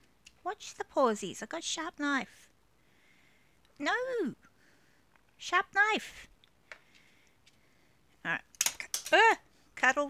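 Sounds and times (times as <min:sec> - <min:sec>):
woman speaking: 0:00.4 - 0:02.5, 0:03.7 - 0:04.5, 0:05.4 - 0:06.3, 0:08.2 - 0:10.0
small hard objects clicking: 0:08.5 - 0:09.2.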